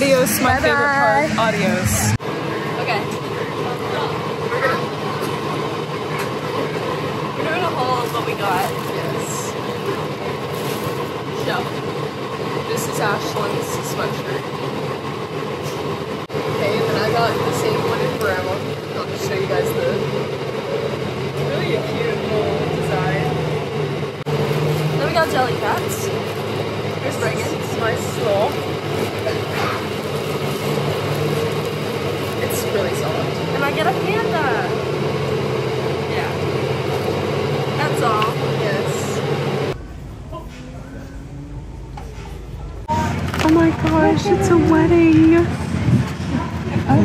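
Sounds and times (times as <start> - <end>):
bus engine drone: 0.0 - 47.0
voices talking: 0.0 - 47.0.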